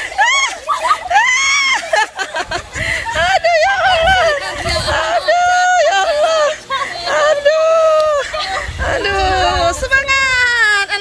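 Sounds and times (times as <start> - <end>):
woman shrieking: 0.2 - 2.0.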